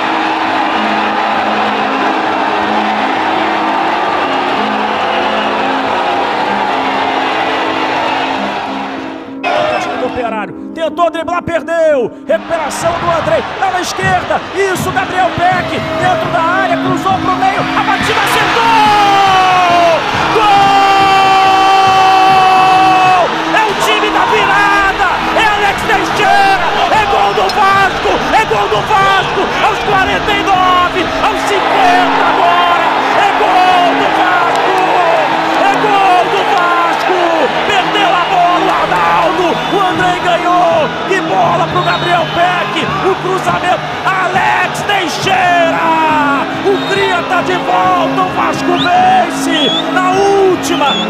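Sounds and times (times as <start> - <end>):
stadium crowd: 0.0 - 10.3, 12.3 - 51.0
background music: 0.0 - 51.0
commentator shouting: 9.4 - 51.0.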